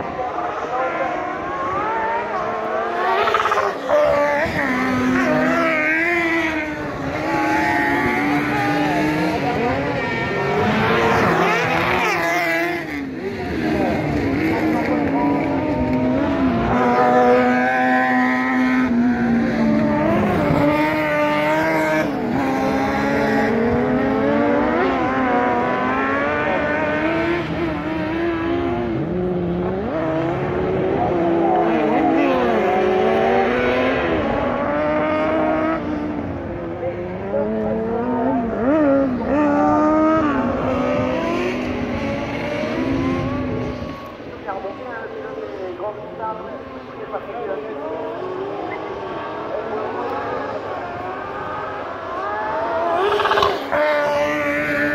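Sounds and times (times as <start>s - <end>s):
buggy engines high-revving: 0.0s - 44.6s, 46.2s - 54.9s.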